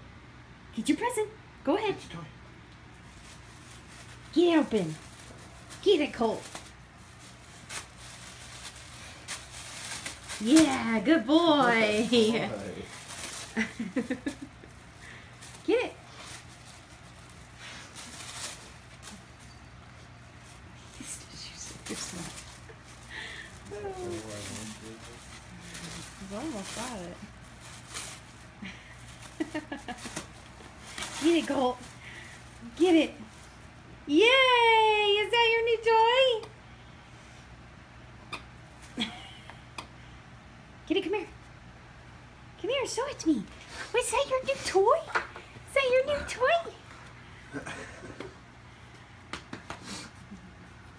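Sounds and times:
gift bag crinkling: 0:03.0 - 0:33.7
wrapping paper rustling and tearing: 0:03.0 - 0:33.8
person laughing: 0:13.6 - 0:14.8.

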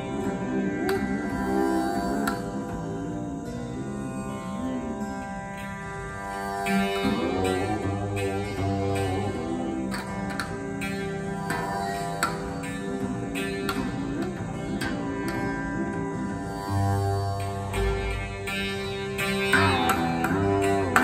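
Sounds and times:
plucked string notes: 0:00.0 - 0:21.0
tanpura drone: 0:00.0 - 0:21.0
veena sliding pitch glides: 0:00.0 - 0:21.0.

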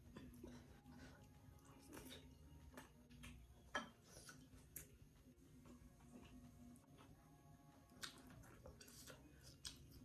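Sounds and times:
chewing clicks and smacks: 0:07.9 - 0:10.0.

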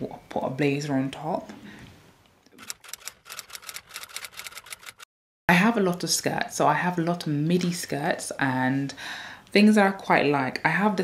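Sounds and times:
typewriter keys clacking: 0:02.6 - 0:05.0.

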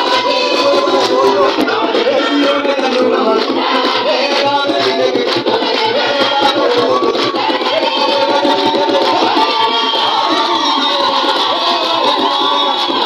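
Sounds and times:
choir singing: 0:00.0 - 0:13.0
sharp high percussion strokes: 0:00.0 - 0:13.0.

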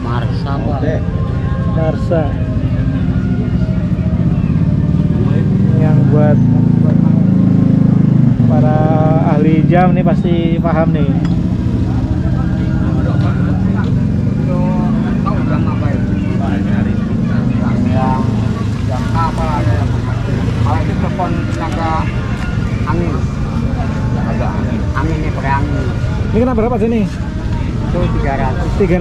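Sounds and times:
low rumble of motor traffic: 0:00.0 - 0:29.0
people chattering: 0:00.0 - 0:29.0.

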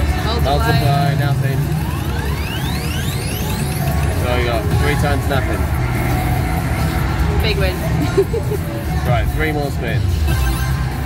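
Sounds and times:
slot machine jingles and effects: 0:00.2 - 0:07.6, 0:10.2 - 0:10.9
rising electronic sweeps: 0:00.3 - 0:08.4.

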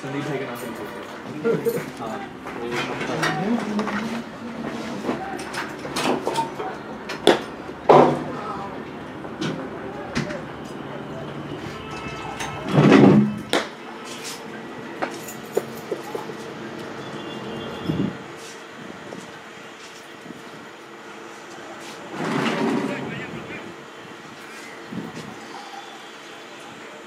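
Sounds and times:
steady hum: 0:00.0 - 0:27.0.

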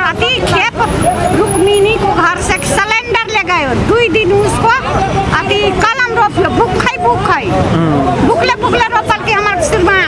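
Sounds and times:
woman speaking: 0:00.0 - 0:07.6, 0:08.2 - 0:10.0
low rumble of street traffic: 0:00.0 - 0:10.0.

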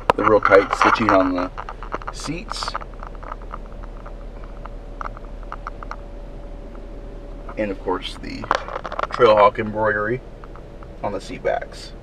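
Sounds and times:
soft ticks and clicks: 0:00.0 - 0:06.1
low cabin hum: 0:00.0 - 0:12.0.

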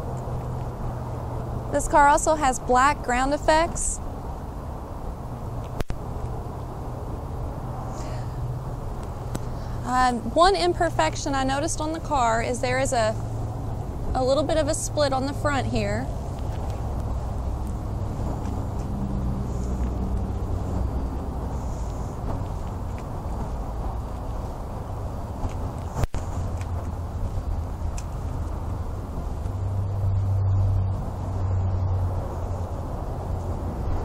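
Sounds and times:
traffic rumble: 0:00.0 - 0:34.0.

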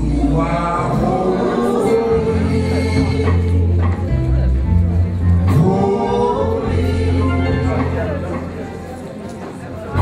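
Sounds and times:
gospel singing voices: 0:00.0 - 0:04.3, 0:05.4 - 0:08.6
live band with bass line: 0:00.0 - 0:10.0.

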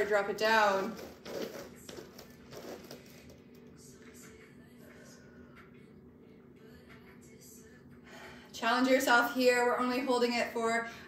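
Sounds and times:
soft movement sounds: 0:00.0 - 0:07.7
faint steady hum: 0:00.0 - 0:11.0.

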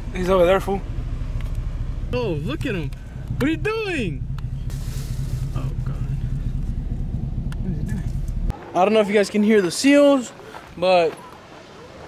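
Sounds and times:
car engine idling: 0:00.0 - 0:08.5.

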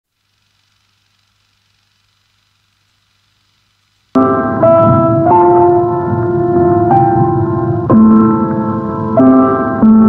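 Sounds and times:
faint hiss: 0:00.1 - 0:10.0
low steady hum: 0:00.1 - 0:10.0.

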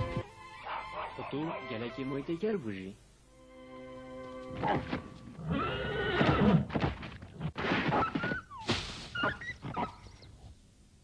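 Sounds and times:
horse whinnying: 0:04.6 - 0:06.7.

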